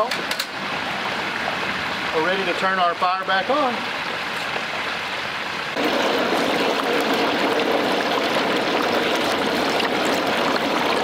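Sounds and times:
hot oil bubbling and sizzling: 0.0 - 11.0.

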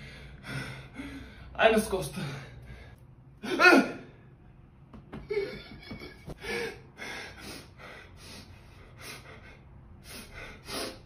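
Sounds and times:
young man gasping breaths: 6.4 - 11.0.

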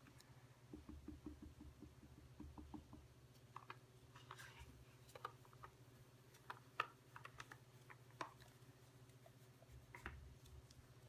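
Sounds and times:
ink sponge tapping on cardstock: 0.7 - 3.1.

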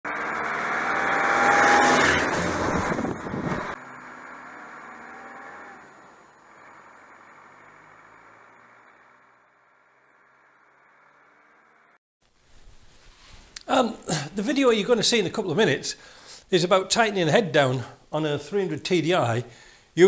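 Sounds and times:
vehicle driving past on gravel: 0.1 - 12.0.

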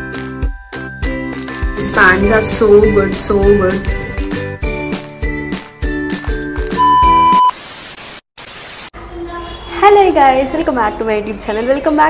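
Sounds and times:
high test-tone beep: 6.8 - 7.5
tv static hiss: 7.4 - 8.9.

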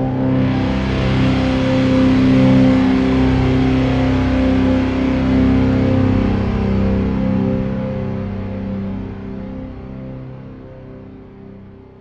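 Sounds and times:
electric guitar chords ringing: 0.0 - 11.7.

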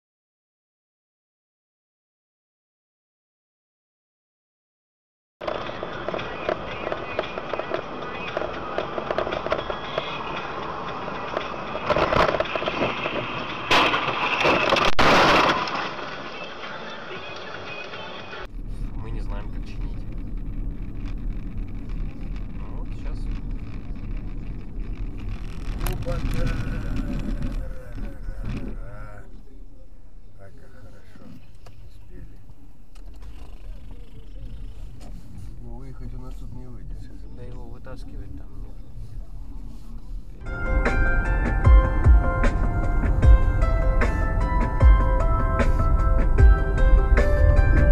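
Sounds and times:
voices in car: 5.4 - 12.0, 16.2 - 20.2, 21.8 - 41.4
road and cabin noise: 5.4 - 47.9
car interior low hum: 17.2 - 47.9.

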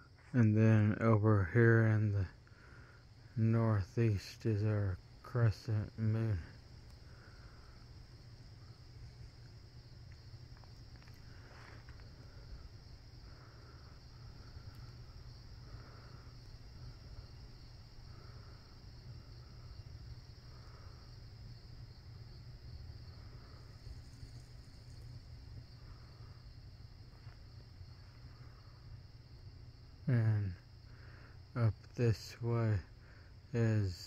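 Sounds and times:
low steady rumble: 0.0 - 34.0
soft low insect chirps: 0.0 - 34.0.

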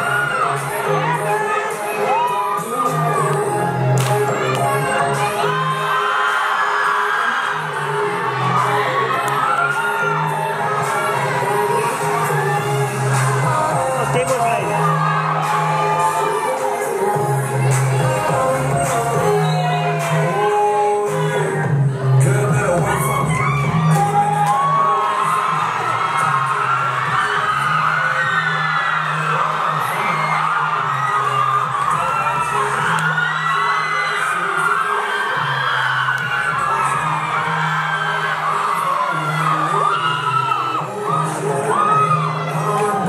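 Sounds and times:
audience cheering and whooping: 0.0 - 43.0
music over loudspeakers: 0.0 - 43.0.

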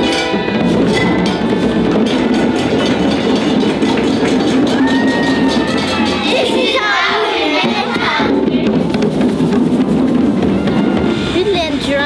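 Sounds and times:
hand drumming on djembes: 0.0 - 6.5, 7.6 - 11.4.

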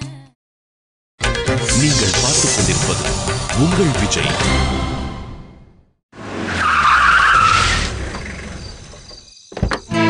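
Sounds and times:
car driving up: 6.2 - 10.0
tyres skidding: 6.2 - 10.0.

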